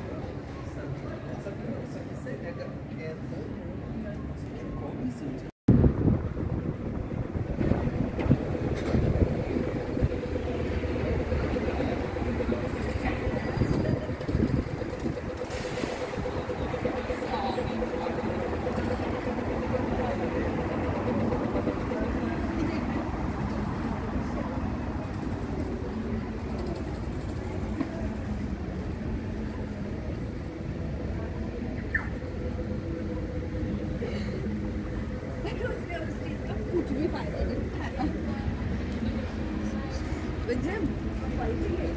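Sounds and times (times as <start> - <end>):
passers-by talking indistinctly: 0.0 - 41.9
traffic noise: 0.0 - 41.9
engine hum: 5.7 - 41.9.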